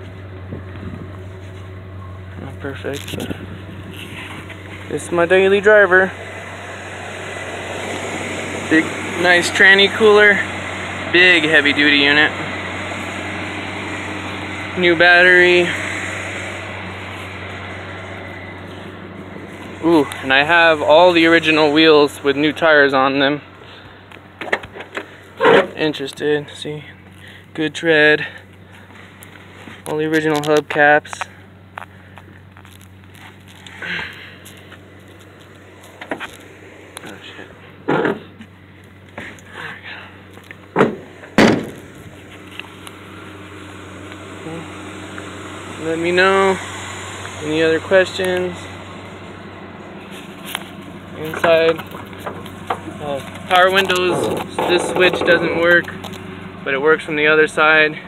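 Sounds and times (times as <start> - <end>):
low hum: 0.0 - 30.0, 31.2 - 58.0
heavy knocks: 40.7 - 41.8.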